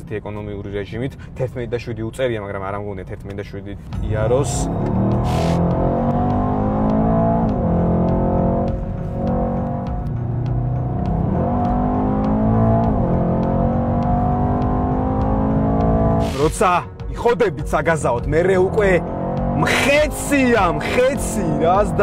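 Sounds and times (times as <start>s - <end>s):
car engine accelerating: 3.9s - 16.6s, 18.2s - 22.0s
music with steady beat: 3.9s - 22.0s.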